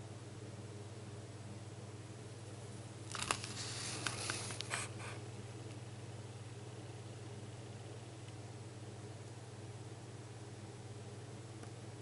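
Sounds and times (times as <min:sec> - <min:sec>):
paper page turning: 0:03.1 - 0:05.2.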